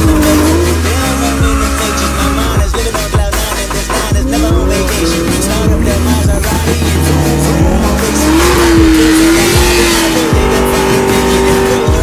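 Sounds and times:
hip hop music with heavy bass: 0.0 - 12.0
sports car engine revving: 0.0 - 12.0.

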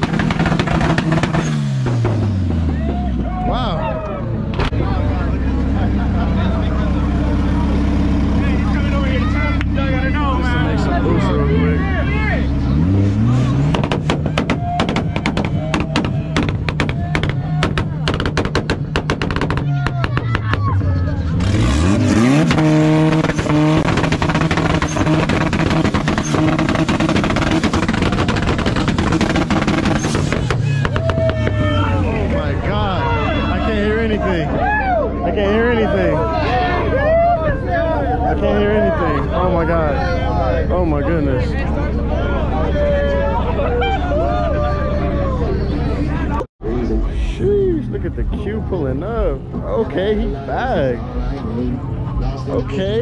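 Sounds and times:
car engine revving at limiter: 0.0 - 2.8, 5.2 - 34.5
exhaust pops and bangs: 0.0 - 3.3, 13.6 - 20.9, 22.2 - 31.9
crowd voices: 0.0 - 53.0.

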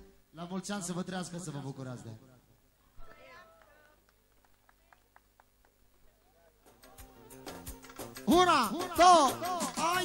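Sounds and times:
quick hand claps: 7.5 - 8.3.

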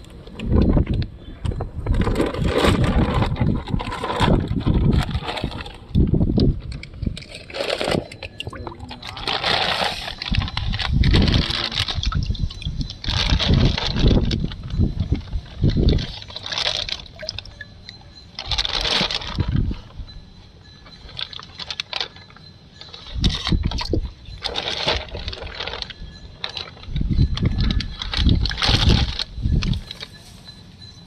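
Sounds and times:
microphone handling rumble: 0.0 - 7.2, 7.8 - 17.7, 23.0 - 30.0
plastic bag crinkling: 2.0 - 20.0, 20.8 - 30.5
water sloshing: 15.2 - 19.5
water dripping: 16.9 - 18.0.

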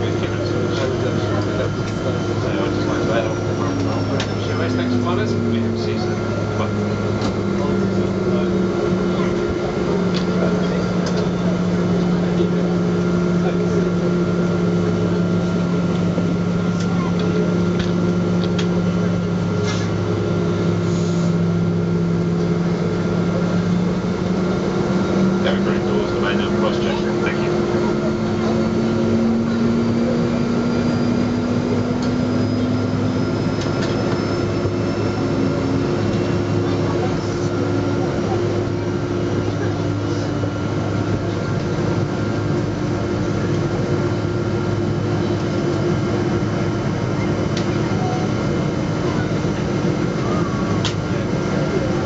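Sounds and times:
airplane cabin drone: 0.0 - 52.0.

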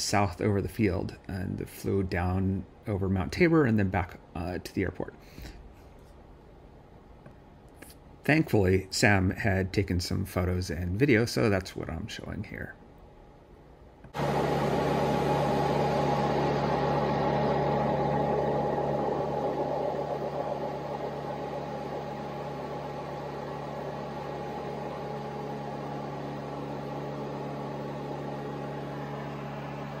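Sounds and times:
light airplane engine and propeller drone: 14.1 - 30.0.

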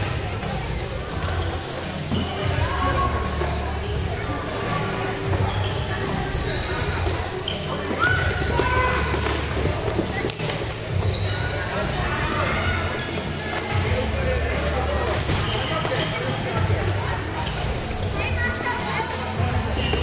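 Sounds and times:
shoes squeaking on floor: 0.0 - 20.0.

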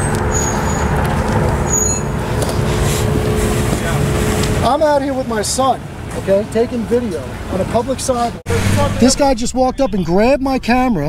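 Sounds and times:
vehicle and street rumble: 0.0 - 10.8.

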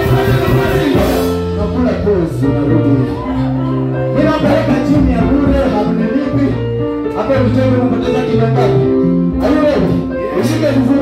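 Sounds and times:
man singing into a microphone: 0.0 - 1.4
gospel band playing: 0.0 - 11.0.

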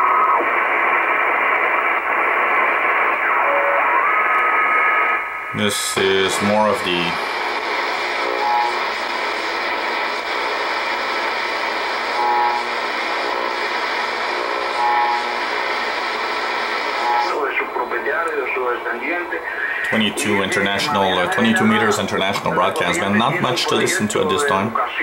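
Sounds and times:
radio static hiss: 0.0 - 25.0
radio tuning whistles: 0.0 - 25.0
faint radio voice: 5.5 - 7.3, 16.9 - 25.0.

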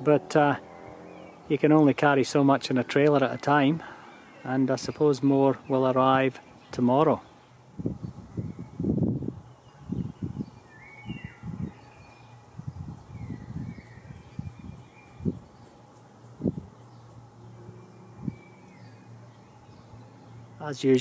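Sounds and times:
wind buffeting microphone: 7.7 - 15.7, 16.3 - 17.1, 18.1 - 18.9
whistled bird calls: 9.5 - 12.4, 13.0 - 15.7.

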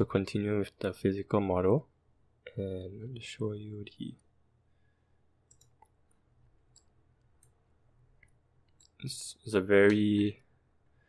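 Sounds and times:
computer mouse clicks: 5.4 - 7.6.

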